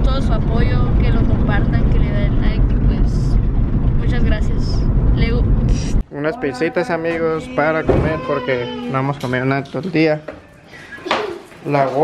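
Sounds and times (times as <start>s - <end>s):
boy talking: 0.0s - 3.3s, 4.0s - 5.5s
car engine rumble: 0.0s - 6.0s
road noise: 0.0s - 9.6s.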